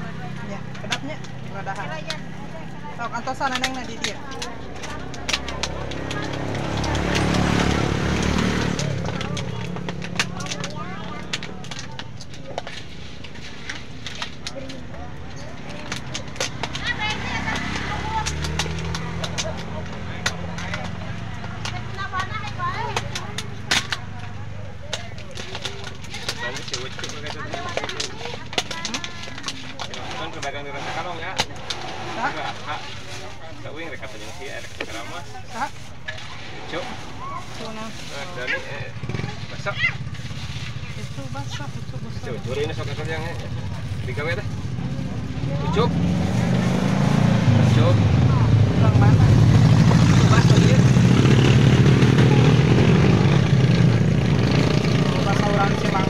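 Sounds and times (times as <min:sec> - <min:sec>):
motorcycle passing by: 0:00.0 - 0:11.3, 0:14.9 - 0:25.1, 0:30.0 - 0:56.0
sharp clicks and clatter: 0:03.0 - 0:33.2.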